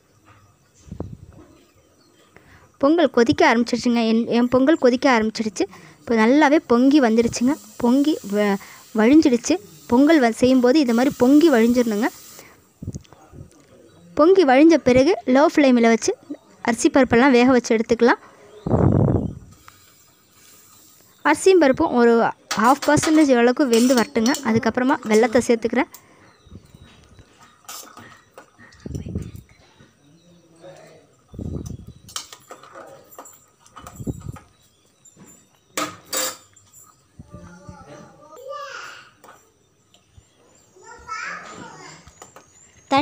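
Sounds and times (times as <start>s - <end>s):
pot frothing hiss: 5.8s - 12.9s, 19.4s - 21.9s
breathy hiss: 7.0s - 12.8s, 19.5s - 21.3s.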